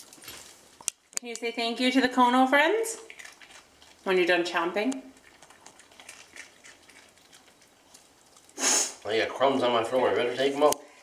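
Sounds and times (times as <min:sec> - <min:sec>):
dog chewing a treat: 0:02.9 - 0:11.0
hiss-like rush of noise: 0:08.6 - 0:09.0.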